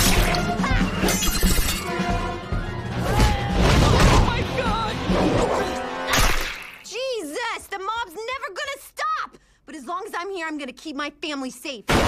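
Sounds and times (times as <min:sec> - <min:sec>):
dramatic music: 0:00.0 - 0:06.4
woman yelling: 0:06.9 - 0:09.4.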